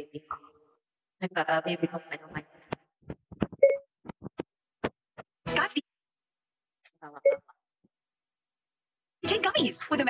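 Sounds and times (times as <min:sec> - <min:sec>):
woman's voice: 0:00.0 - 0:00.4, 0:01.2 - 0:02.6, 0:09.2 - 0:10.0.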